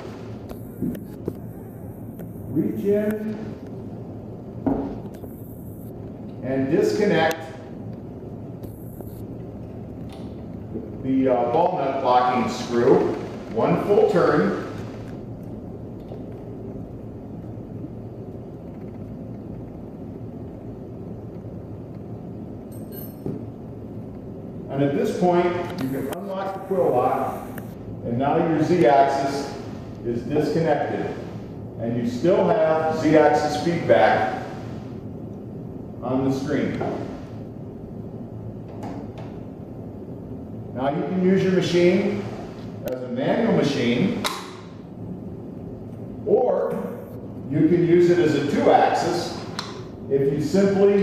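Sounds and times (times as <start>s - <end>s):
low hum of shop machinery: 0.0s - 51.0s.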